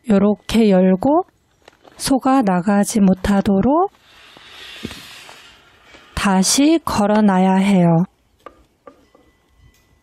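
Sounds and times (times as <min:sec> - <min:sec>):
steady outdoor hiss: 0:02.9 - 0:10.0.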